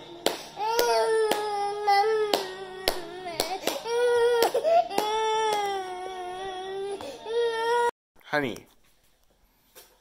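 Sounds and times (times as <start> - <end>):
baby crying: 0.6 - 7.9.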